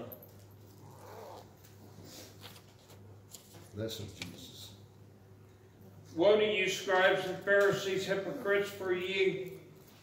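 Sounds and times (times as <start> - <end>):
low electrical hum: 0.0 - 10.0
paper rustling: 2.0 - 3.8.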